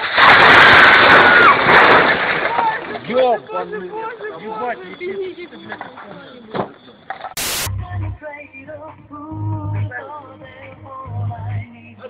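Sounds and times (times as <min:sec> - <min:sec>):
bricks tumbling: 0:00.0 - 0:03.2.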